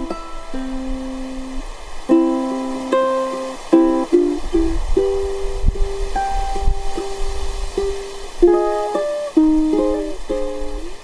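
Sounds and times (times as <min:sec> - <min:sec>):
ukulele plucking single notes: 0:00.0 - 0:11.0
wind rumble on microphone: 0:00.0 - 0:11.0.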